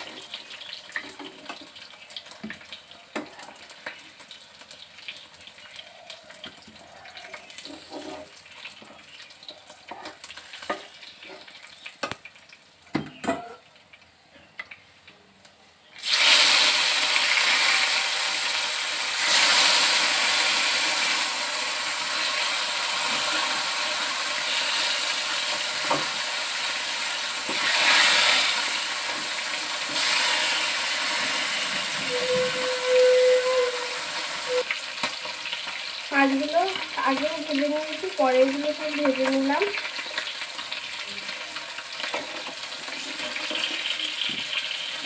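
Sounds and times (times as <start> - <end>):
hot oil sizzling in a frying pan: 0.0 - 14.8, 15.9 - 45.0.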